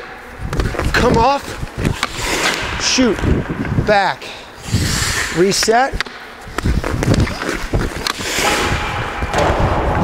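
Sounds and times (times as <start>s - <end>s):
stick working a puck: 0.4s - 2.9s, 4.6s - 9.3s
skates striding on ice: 0.4s - 3.5s, 6.4s - 9.2s
skate blades scraping to stop: 0.8s - 3.0s, 4.6s - 5.7s, 6.6s - 9.2s.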